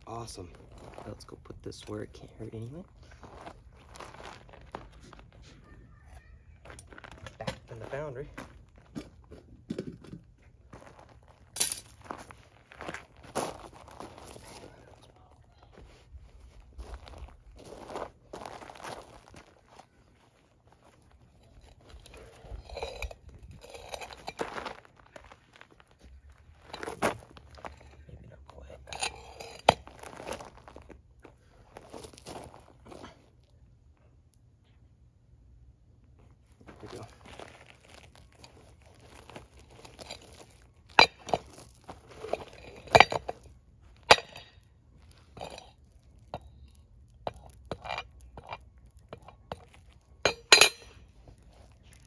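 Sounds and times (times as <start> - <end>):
footsteps on gravel: 0.0 - 5.8, 6.6 - 33.6, 36.2 - 52.0.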